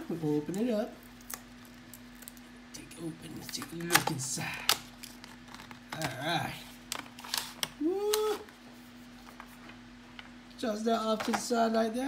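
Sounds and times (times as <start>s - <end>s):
person humming: 7.8s - 8.5s.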